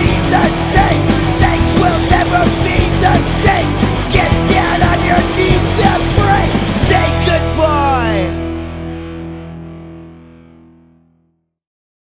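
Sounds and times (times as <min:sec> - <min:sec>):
distorted electric guitar chord: 0:00.0 - 0:11.3.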